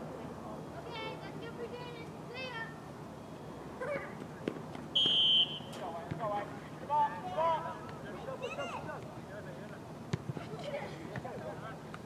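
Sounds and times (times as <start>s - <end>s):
referee's whistle blast: 5.0s - 5.8s.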